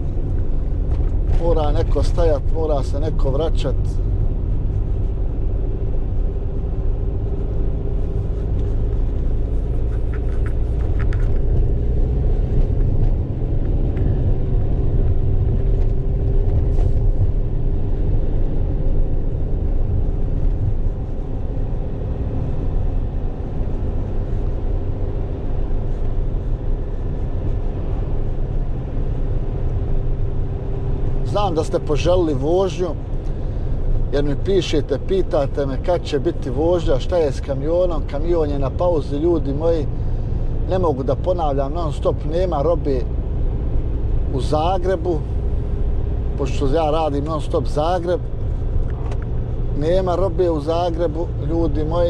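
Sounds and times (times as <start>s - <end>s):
low road rumble: 0.0s - 52.0s
van engine hum: 0.0s - 52.0s.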